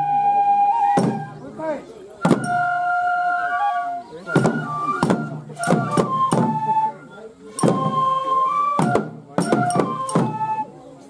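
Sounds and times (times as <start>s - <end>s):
voices: 0.0s - 11.0s
sharp percussive strike: 1.0s - 1.3s, 2.2s - 2.7s, 4.4s - 6.6s, 7.5s - 7.9s, 8.8s - 10.4s
flutes playing held note: 2.2s - 11.0s.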